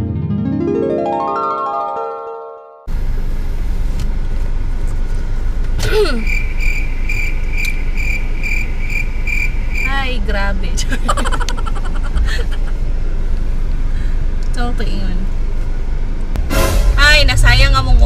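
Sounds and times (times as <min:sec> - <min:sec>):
car engine idling: 0:02.9 - 0:18.0
voice: 0:05.8 - 0:06.3, 0:09.8 - 0:12.4, 0:14.5 - 0:15.3, 0:17.0 - 0:18.0.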